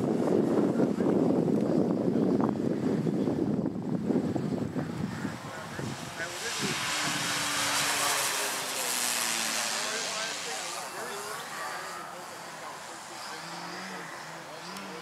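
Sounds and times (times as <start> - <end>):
model airplane engine and propeller: 0.0 - 15.0.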